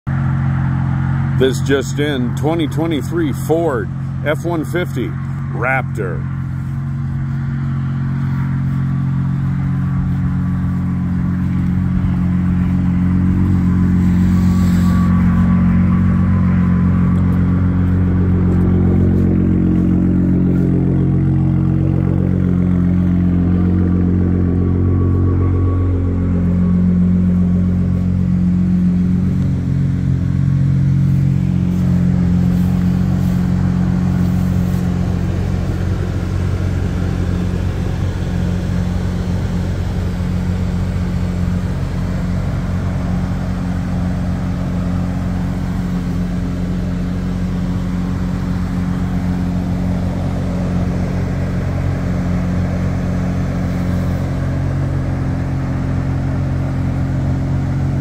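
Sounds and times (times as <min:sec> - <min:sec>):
truck engine idling: 0:00.1 - 0:58.0.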